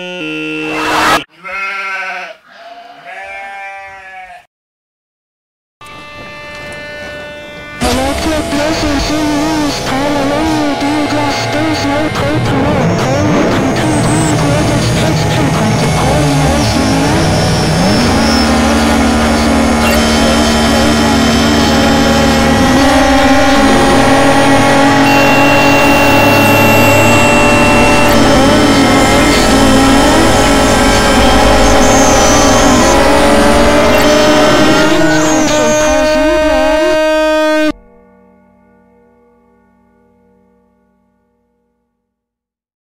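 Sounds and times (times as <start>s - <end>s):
noise music drones: 5.8s - 41.0s.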